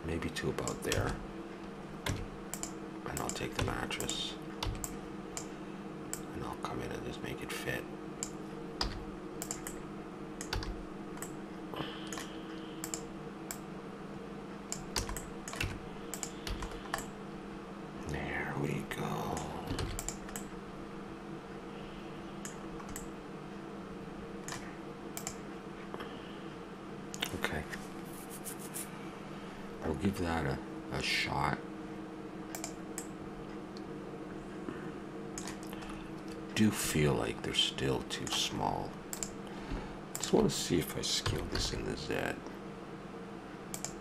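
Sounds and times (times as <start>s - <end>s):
steady low hum: 0.0s - 44.0s
keyboard and mouse clicking: 0.7s - 1.2s, 2.0s - 5.5s, 8.2s - 9.8s, 10.4s - 11.4s, 12.1s - 13.6s, 14.7s - 17.1s, 19.3s - 20.5s, 22.4s - 23.1s, 24.4s - 25.4s, 32.5s - 33.1s, 35.4s - 35.7s, 39.1s - 39.4s, 43.7s - 44.0s.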